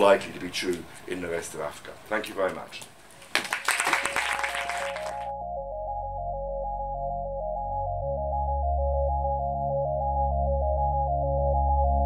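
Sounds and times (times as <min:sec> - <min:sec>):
audience applause: 0:03.3 - 0:05.3
synthesizer music: 0:04.0 - 0:12.0.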